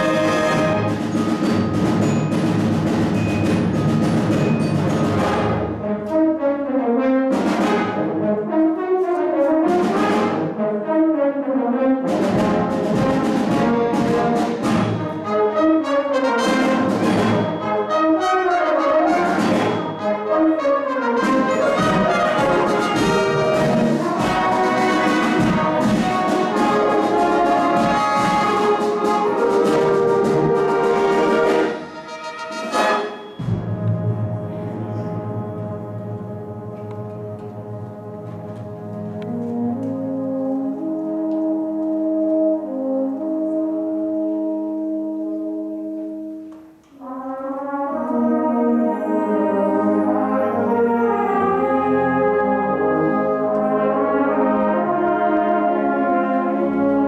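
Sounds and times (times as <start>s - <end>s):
brass band playing: 0.0s - 57.0s.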